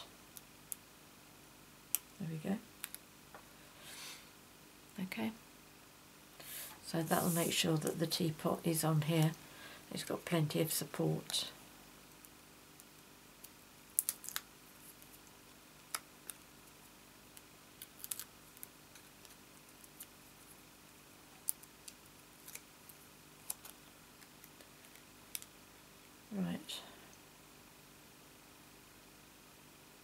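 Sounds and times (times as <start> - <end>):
paper and card clicking and crackling: 14.0 - 16.5, 17.3 - 20.5, 21.4 - 25.6.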